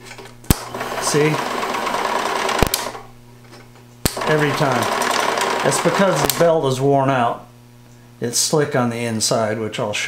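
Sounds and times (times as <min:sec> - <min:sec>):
projector hum and clatter: 0:00.0 - 0:10.0
sharp click: 0:00.5 - 0:00.7, 0:02.6 - 0:03.0, 0:04.0 - 0:04.2, 0:06.2 - 0:06.5.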